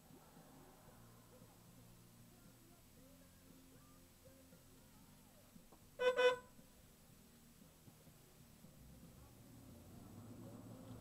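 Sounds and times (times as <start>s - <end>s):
vehicle horn toots: 6.0s - 6.6s.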